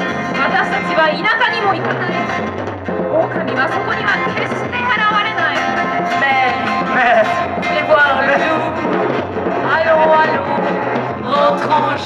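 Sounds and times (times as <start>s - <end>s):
acoustic guitar: 0.0s - 12.0s
bending melody line: 0.0s - 12.0s
drums: 0.0s - 12.0s.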